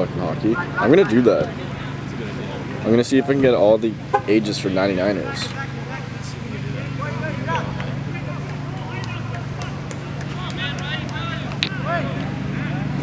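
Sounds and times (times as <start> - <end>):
distant players shouting: 0.0 - 13.0.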